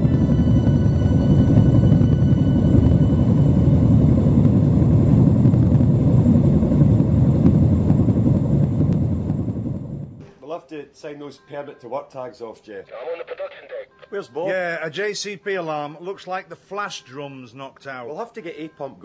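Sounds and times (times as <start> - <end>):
loud steady low rumble: 0.0 - 10.2.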